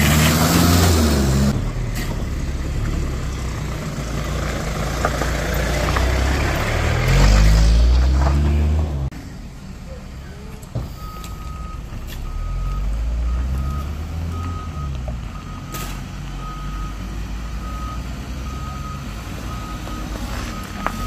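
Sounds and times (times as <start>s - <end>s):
vehicle engine rumble: 0.0s - 21.0s
reverse warning beeps: 10.8s - 21.0s.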